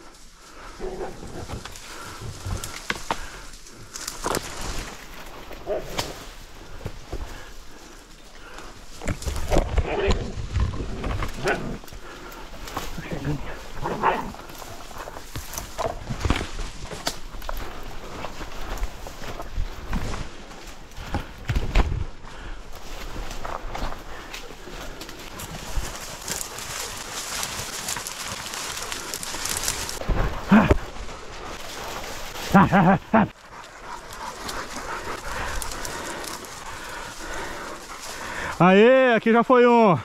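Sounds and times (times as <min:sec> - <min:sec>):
branches crashing and snapping: 0:01.1 - 0:38.6.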